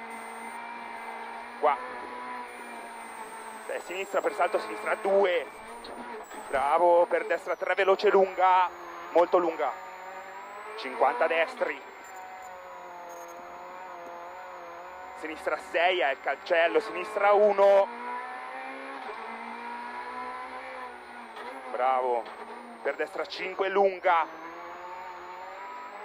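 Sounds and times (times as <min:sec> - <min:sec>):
faint high whine: 0:00.0 - 0:17.6
car engine from inside cabin: 0:00.0 - 0:26.0
tyre and road noise: 0:00.0 - 0:26.0.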